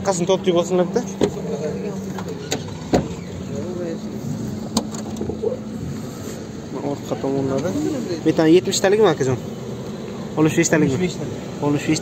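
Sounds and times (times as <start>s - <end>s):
steady low hum: 0.0s - 12.0s
car doors clicking and knocking: 1.0s - 3.4s, 4.6s - 5.4s.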